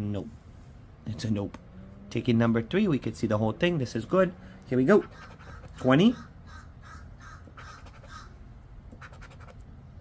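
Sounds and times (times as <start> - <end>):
coin scratching lottery ticket: 5.0 - 5.8, 7.6 - 8.2, 9.0 - 9.6.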